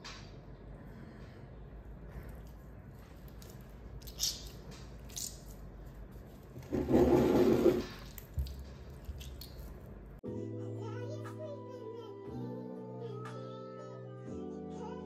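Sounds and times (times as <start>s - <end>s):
wet clay squelching: 7.8s - 10.0s.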